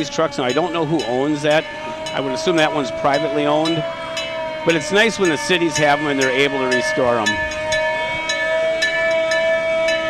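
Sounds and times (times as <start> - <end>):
fire truck bell ringing: 0.0 - 10.0.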